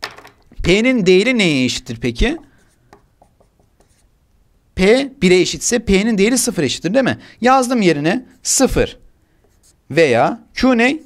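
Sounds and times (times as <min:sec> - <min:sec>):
man speaking: 0:00.6 - 0:02.6, 0:04.8 - 0:09.0, 0:09.9 - 0:11.0
marker writing on whiteboard: 0:02.3 - 0:04.1, 0:09.4 - 0:09.8.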